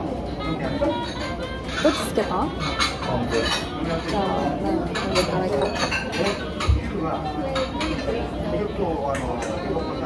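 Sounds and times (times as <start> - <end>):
ceramic dishes clinking: 0.9 - 8.3.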